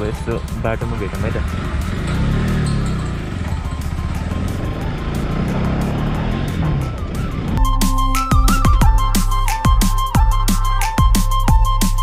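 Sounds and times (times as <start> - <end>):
background music: 0.0 - 12.0
motorcycle engine accelerating: 0.4 - 7.8.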